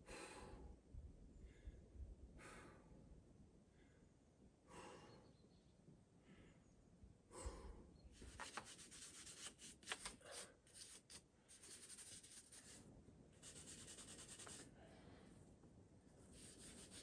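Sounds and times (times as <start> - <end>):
brush scrubbing on rock: 8.4 - 12.8, 13.4 - 14.7, 16.4 - 17.0.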